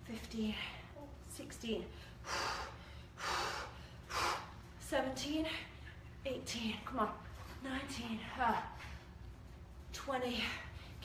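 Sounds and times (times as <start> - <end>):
woman breathing hard: 1.9 - 4.6.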